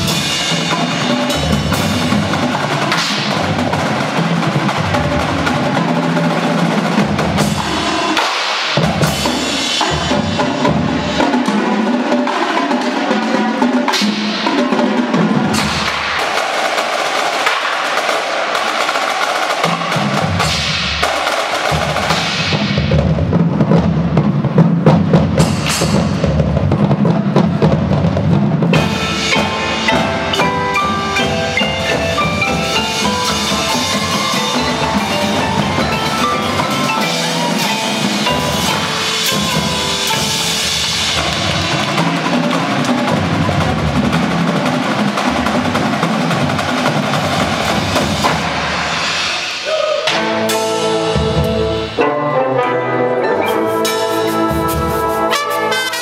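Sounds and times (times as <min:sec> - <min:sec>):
mallet percussion: 0:00.0 - 0:16.2, 0:18.6 - 0:56.0
snare drum rolls: 0:00.0 - 0:50.3.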